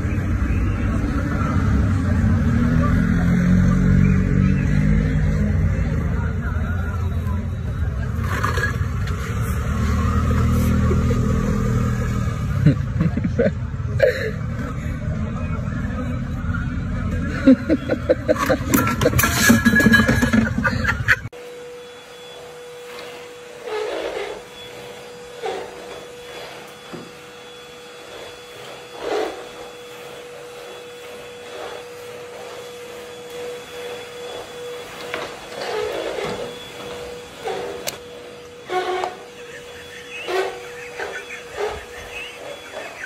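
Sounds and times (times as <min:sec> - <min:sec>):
vacuum cleaner humming: 0:00.0 - 0:43.0.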